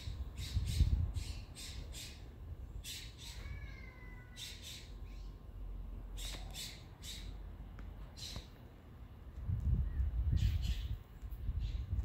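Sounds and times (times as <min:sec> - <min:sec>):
steady low rumble: 0:00.0 - 0:02.9, 0:07.3 - 0:12.0
bird harsh calls: 0:00.0 - 0:05.4, 0:06.2 - 0:07.4, 0:08.2 - 0:08.5.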